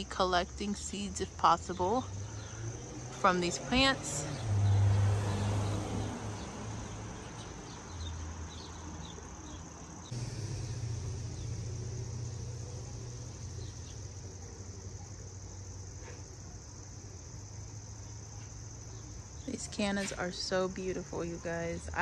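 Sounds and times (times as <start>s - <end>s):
crickets chirping: 0.0s - 22.0s.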